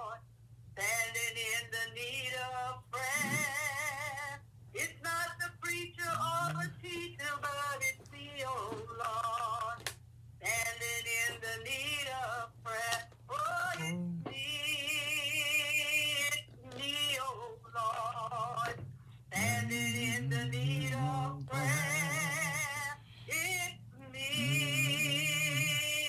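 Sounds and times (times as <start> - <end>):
person singing: 3.2 - 3.5, 6.1 - 7.0, 13.5 - 14.4, 19.3 - 26.0
singer breathing: 22.1 - 23.4.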